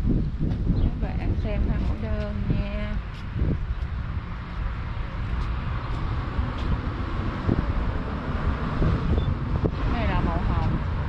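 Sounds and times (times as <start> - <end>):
road traffic: 0.0 - 11.0
wind buffeting microphone: 0.0 - 11.0.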